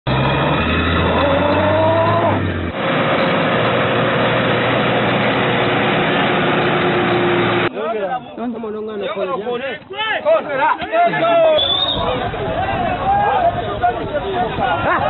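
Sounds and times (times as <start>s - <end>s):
vehicle engine revving in mud: 0.1s - 7.7s
loud rushing noise: 0.2s - 7.7s
engine running steadily: 1.0s - 7.7s.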